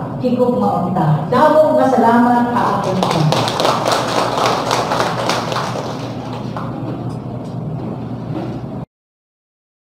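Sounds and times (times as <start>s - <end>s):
audience applauding: 2.8s - 6.8s.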